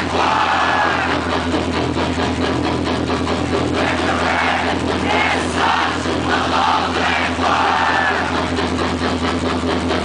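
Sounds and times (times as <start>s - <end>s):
distorted guitars and bass: 0.0s - 10.0s
rapid drum hits: 0.0s - 10.0s.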